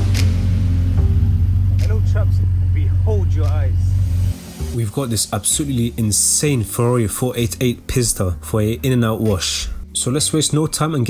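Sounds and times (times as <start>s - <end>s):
car engine idling: 0.0s - 4.7s
music: 0.0s - 11.0s
person speaking: 1.8s - 3.9s, 4.8s - 11.0s.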